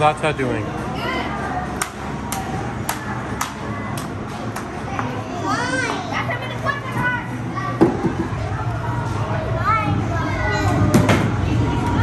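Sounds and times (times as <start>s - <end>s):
murmur of voices: 0.0s - 12.0s
children chattering: 0.8s - 12.0s.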